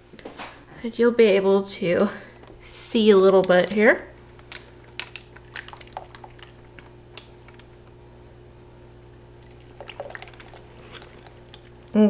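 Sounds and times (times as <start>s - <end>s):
steady low hum: 0.0s - 12.0s
soap batter splatting: 4.4s - 7.7s, 9.4s - 12.0s.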